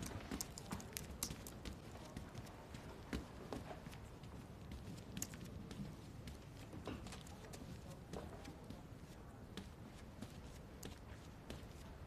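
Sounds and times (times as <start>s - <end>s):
light taps and clicks: 0.0s - 8.8s.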